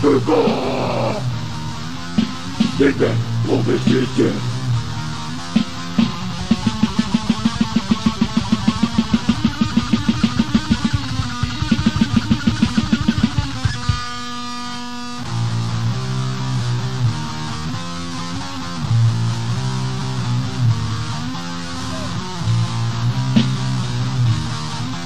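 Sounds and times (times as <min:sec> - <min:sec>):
distorted electric guitar riff: 0:00.0 - 0:25.0
drums: 0:00.0 - 0:25.0.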